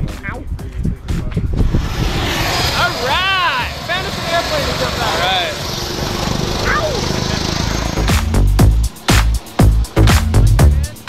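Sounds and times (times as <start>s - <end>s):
wind rumble on microphone: 0.0s - 4.0s
engine drone: 1.5s - 11.0s
voices calling out: 2.3s - 8.2s.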